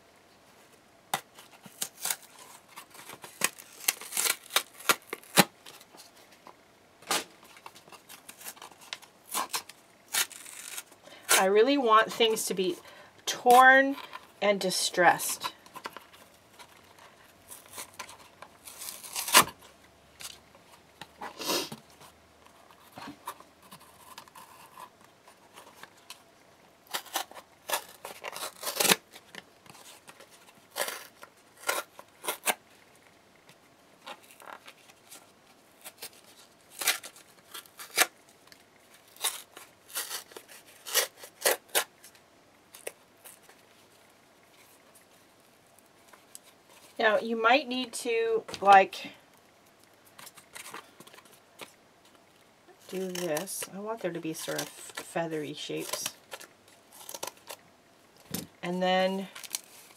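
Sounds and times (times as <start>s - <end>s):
cardboard tearing: 1.1s - 6.2s, 7.1s - 12.4s, 15.0s - 20.4s, 21.2s - 26.2s, 26.8s - 32.7s, 34.0s - 43.6s, 50.1s - 51.7s, 52.7s - 57.6s, 59.1s - 59.9s.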